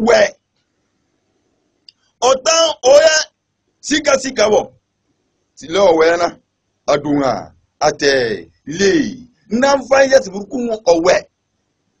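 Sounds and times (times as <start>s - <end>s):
man preaching: 0.0s - 0.3s, 2.2s - 4.7s, 5.6s - 11.3s.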